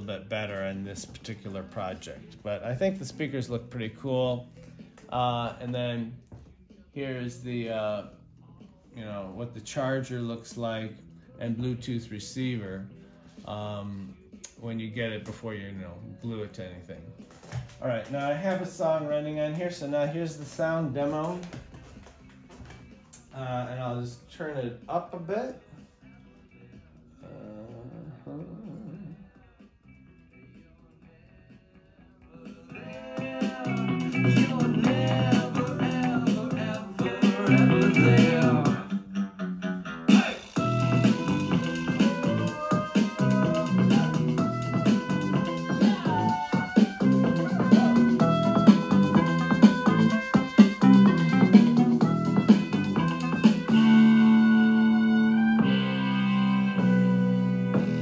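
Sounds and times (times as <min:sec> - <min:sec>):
song through speakers: 0:00.0 - 0:58.0.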